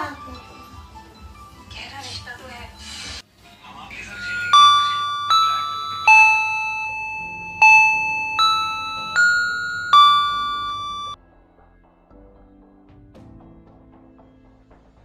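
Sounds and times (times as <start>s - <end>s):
electronic doorbell chime tune: 4.0s - 11.2s.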